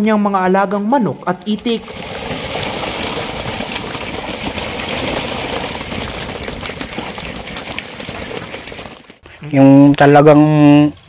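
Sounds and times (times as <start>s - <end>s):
ducks beating wings: 1.5s - 9.4s.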